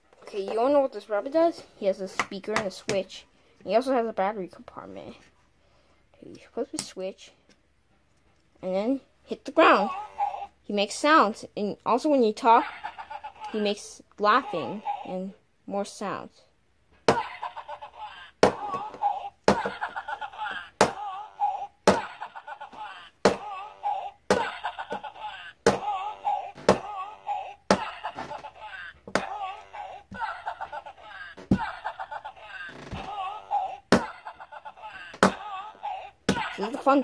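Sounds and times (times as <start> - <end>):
electronic laughing from toy: 12.5 - 13.6, 17.2 - 37.0.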